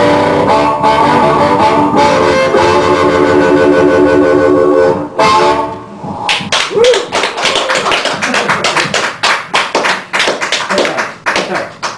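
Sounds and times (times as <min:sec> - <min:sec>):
audience applauding: 0:06.3 - 0:11.9.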